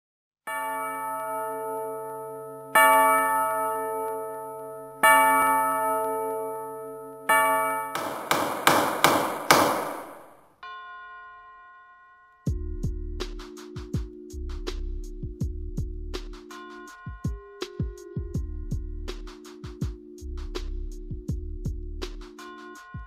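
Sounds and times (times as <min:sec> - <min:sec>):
deep bell-like chimes: 0:00.5 - 0:08.0.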